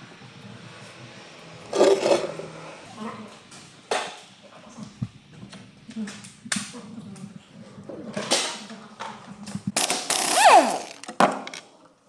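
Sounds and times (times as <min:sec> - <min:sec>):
cordless impact tool rattling: 0:09.8 - 0:11.6.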